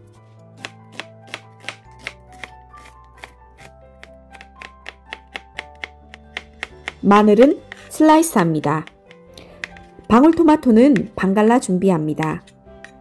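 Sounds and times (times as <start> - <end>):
soft background music: 0.0 - 13.0
knife chopping on plastic board: 0.6 - 11.2.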